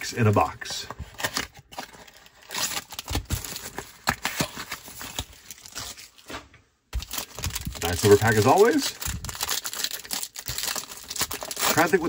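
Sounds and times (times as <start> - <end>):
cardboard and foil crinkling: 0.0 - 6.4, 7.0 - 12.0.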